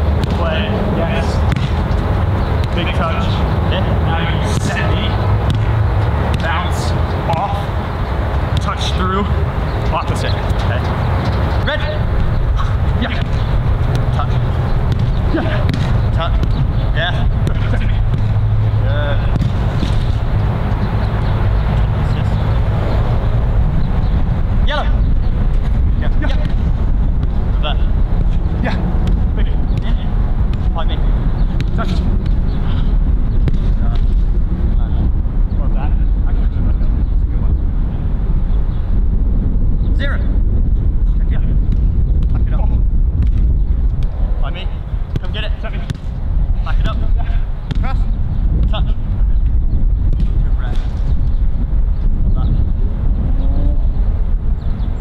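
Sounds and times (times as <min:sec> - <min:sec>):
soccer ball kicked: 0:00.1 - 0:00.7, 0:01.4 - 0:03.2, 0:04.4 - 0:07.7, 0:08.5 - 0:09.0, 0:12.8 - 0:18.5, 0:19.1 - 0:20.4, 0:25.5 - 0:27.4, 0:28.1 - 0:30.8, 0:31.4 - 0:32.5, 0:33.4 - 0:34.2, 0:41.6 - 0:44.2, 0:45.1 - 0:48.9, 0:50.0 - 0:51.1
low rumble: 0:10.7 - 0:55.0.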